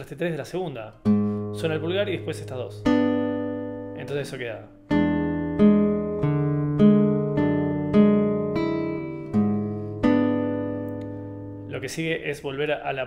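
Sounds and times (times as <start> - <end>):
classical guitar fingerpicked arpeggio: 1.0 - 12.4.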